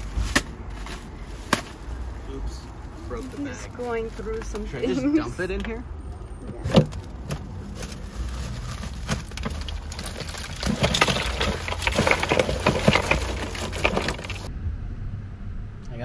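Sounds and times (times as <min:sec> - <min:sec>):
plastic bag of ice crinkling: 0:07.6 - 0:14.5
clicks and knocks: 0:09.3 - 0:14.5
steady low rumble: 0:14.4 - 0:16.0.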